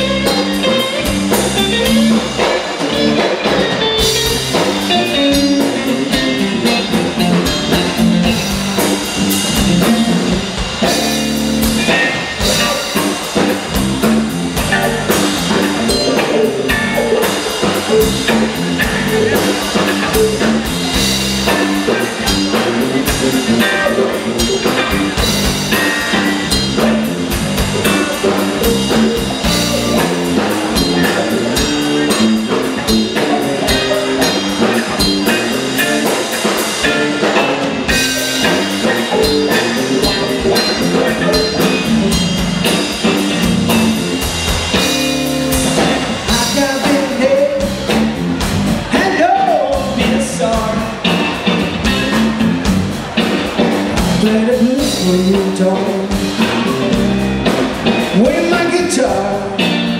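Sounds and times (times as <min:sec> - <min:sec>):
live blues band playing: 0:00.0 - 0:59.9.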